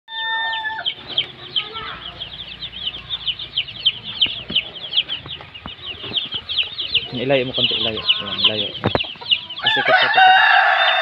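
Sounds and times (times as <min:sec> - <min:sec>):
chicks peeping: 0:00.1 - 0:11.0.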